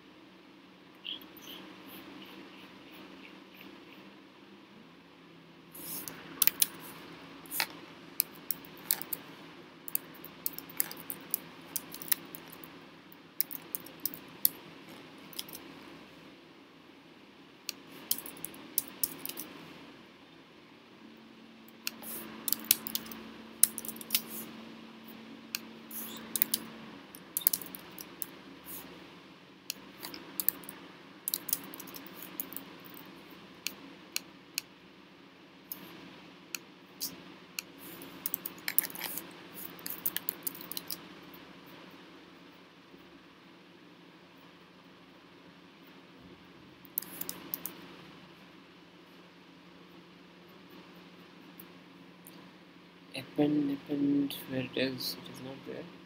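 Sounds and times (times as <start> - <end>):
faint steady hum: 0.0 - 56.0.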